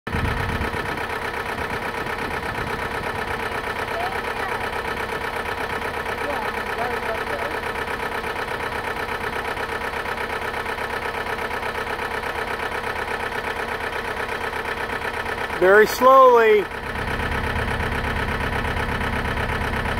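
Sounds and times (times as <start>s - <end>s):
engine idling: 0.1s - 19.9s.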